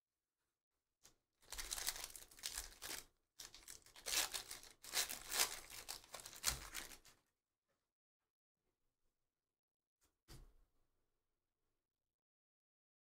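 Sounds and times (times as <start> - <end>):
foil wrappers crinkling and tearing: 1.4 - 7.1.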